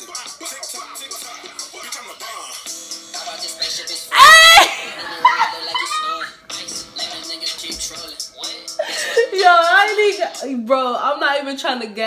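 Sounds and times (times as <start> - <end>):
rapping over a beat: 0.0 - 12.0
woman yelling: 4.1 - 4.8.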